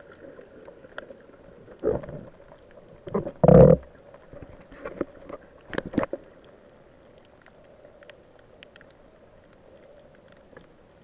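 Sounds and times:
underwater wash: 0.0s - 11.0s
gurgling bubble bursts: 3.0s - 4.0s.

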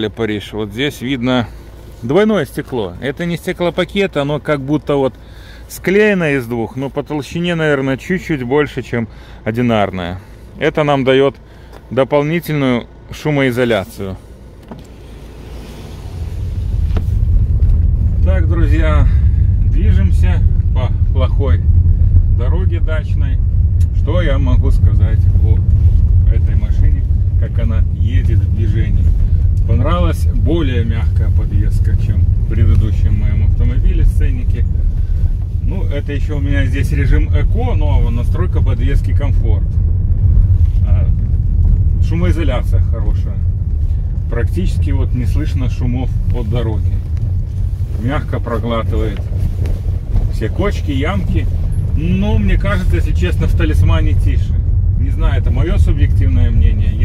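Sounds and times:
car rolling over rough road: 13.6s - 57.0s.

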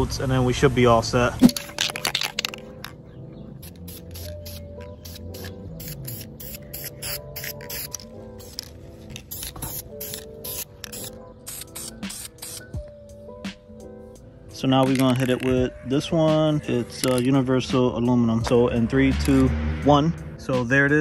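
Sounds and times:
background music: 0.0s - 21.0s
aerosol can spraying bursts: 3.6s - 12.8s.

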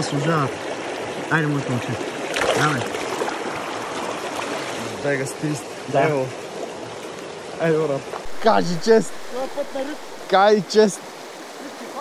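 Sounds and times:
river rushing over stones: 0.0s - 12.0s.

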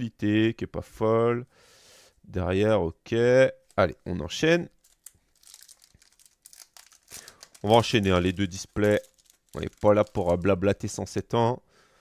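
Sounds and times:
foil wrapper crinkling: 4.8s - 11.0s.

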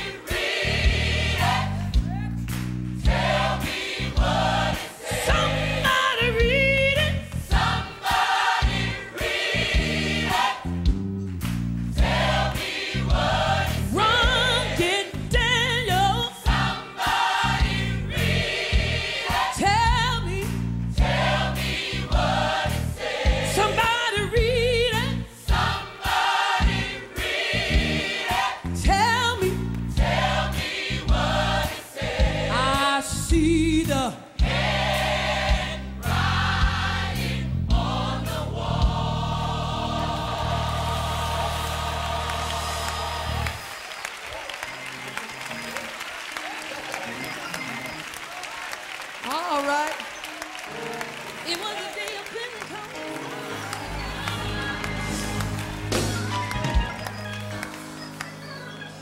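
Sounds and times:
gospel choir with band: 0.0s - 49.0s, 50.2s - 59.0s
audience applause: 40.4s - 59.0s.

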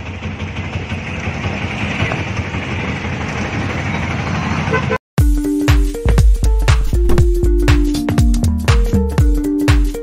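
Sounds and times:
motorcycle and vehicle engines: 0.0s - 5.0s
horns honking: 4.6s - 5.0s.

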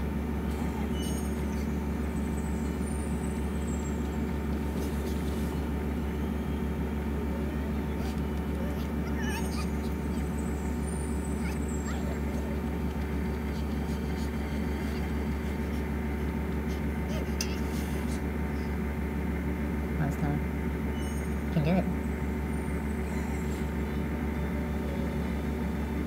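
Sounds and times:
steady low hum: 0.0s - 26.0s
faint high-pitched chirping glides: 0.6s - 4.5s, 7.4s - 15.3s, 20.7s - 25.8s.

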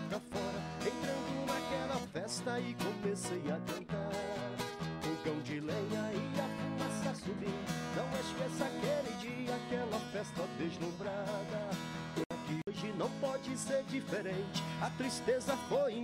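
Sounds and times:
acoustic guitar strumming: 0.0s - 16.0s
man singing: 0.0s - 16.0s.

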